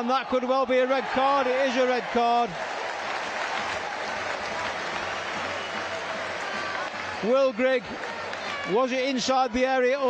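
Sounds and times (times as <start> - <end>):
stadium crowd clapping and cheering: 0.0 - 10.0.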